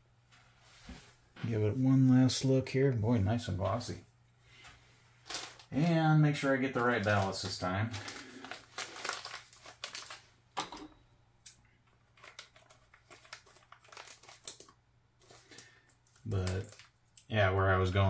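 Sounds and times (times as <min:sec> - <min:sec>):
plastic packet crinkling: 0:05.2 - 0:10.6, 0:11.5 - 0:17.4.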